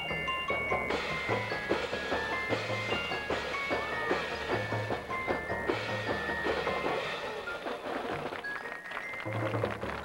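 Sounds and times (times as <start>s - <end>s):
marching band playing: 0.9s - 8.5s.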